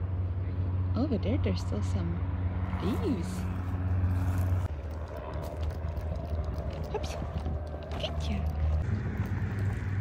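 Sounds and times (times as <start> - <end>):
vehicle engine hum: 0.0 - 10.0.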